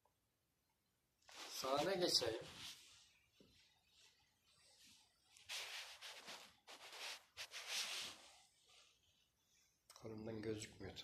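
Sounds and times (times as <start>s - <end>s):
faint rustling and rubbing: 1.2s - 9.8s.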